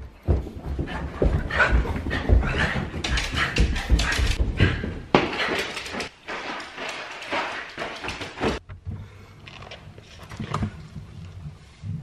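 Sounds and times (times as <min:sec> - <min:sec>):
footsteps on carpeted stairs: 0:00.0 - 0:09.0.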